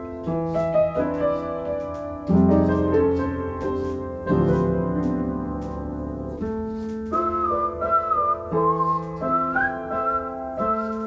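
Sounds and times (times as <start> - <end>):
piano chords: 0.0 - 11.0
whistled melody: 6.8 - 11.0.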